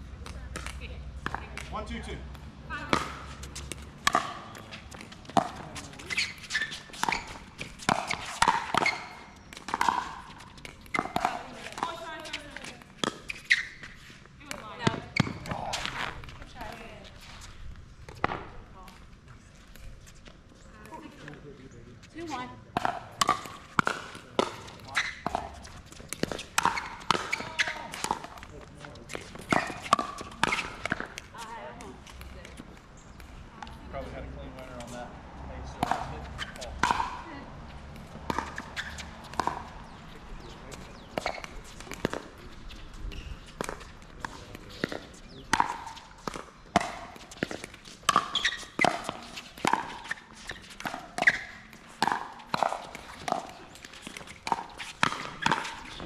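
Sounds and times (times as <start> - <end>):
players talking: 0.2 - 13.6, 14.4 - 56.0.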